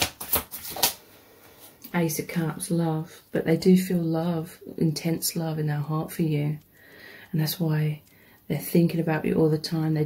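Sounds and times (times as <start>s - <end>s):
cards being shuffled: 0.0s - 1.0s.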